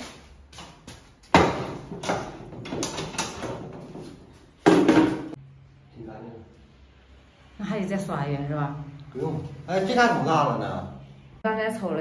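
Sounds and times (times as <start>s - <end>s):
footsteps in tiled room: 0.0s - 5.4s
knocking of carried things: 0.5s - 5.4s.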